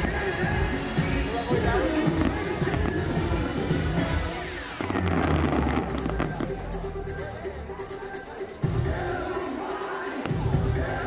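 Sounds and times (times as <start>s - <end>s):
bass-heavy music over speakers: 0.0s - 11.0s.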